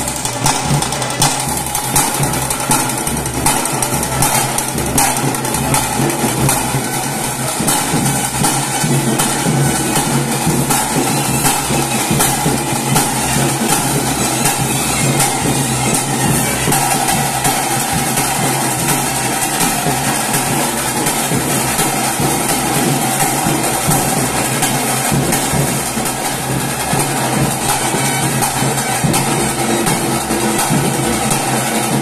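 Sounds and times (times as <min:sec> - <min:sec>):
cymbals: 0:00.0 - 0:32.0
rapid festival drumming: 0:00.0 - 0:32.0.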